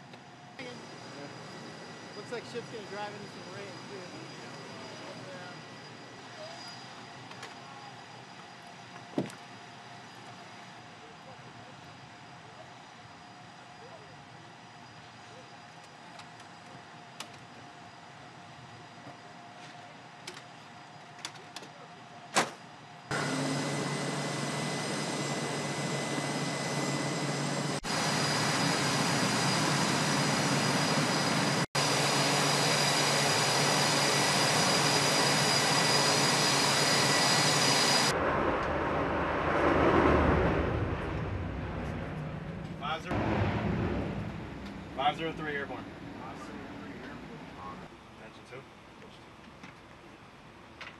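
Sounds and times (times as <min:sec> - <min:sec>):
jet engine noise with whine: 0:00.0 - 0:50.9
low hum: 0:37.6 - 0:47.9.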